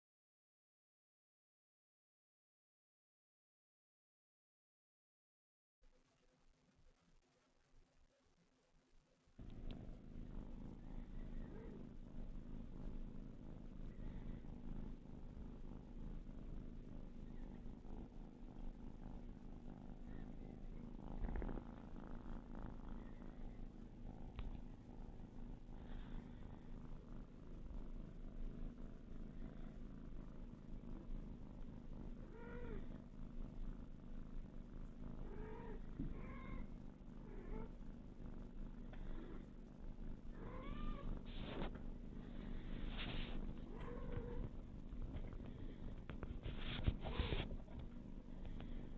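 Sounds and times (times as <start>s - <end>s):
cat purring: 5.9s - 48.9s.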